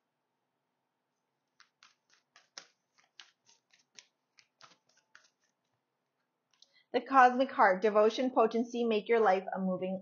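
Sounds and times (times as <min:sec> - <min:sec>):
cards being shuffled: 0:01.4 - 0:05.8.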